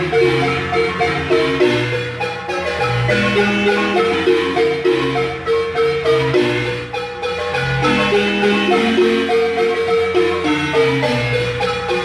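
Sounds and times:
marimba melody: 0.0 - 12.0.

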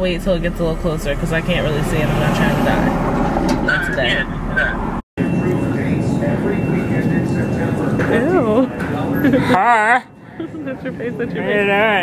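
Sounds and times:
high-pitched whine: 0.0 - 9.2
faint indistinct voices: 4.6 - 12.0.

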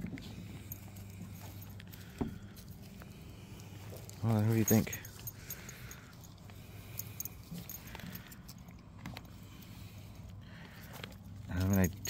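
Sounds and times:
light jangle: 0.0 - 12.0
man speaking: 4.2 - 5.1.

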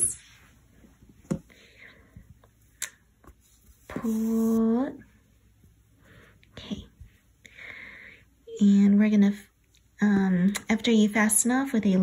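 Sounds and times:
soft rustling: 0.0 - 5.8.

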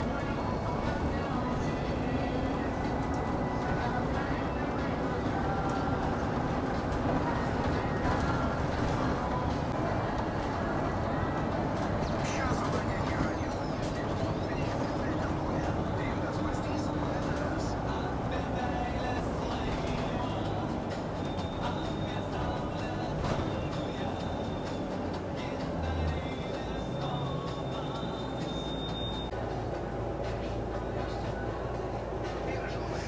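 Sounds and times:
bus engine and road rumble: 0.0 - 33.0
music: 0.0 - 33.0
voices: 0.0 - 33.0.

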